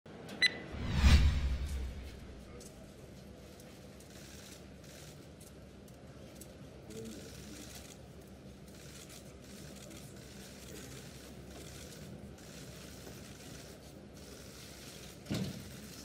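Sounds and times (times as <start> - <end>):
whoosh with low boom: 0.7 - 2.5.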